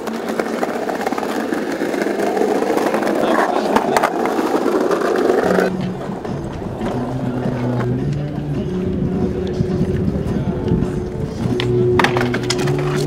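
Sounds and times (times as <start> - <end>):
skateboard clacks: 0.0 - 13.0
skateboard wheels rolling on pavement: 0.0 - 13.0.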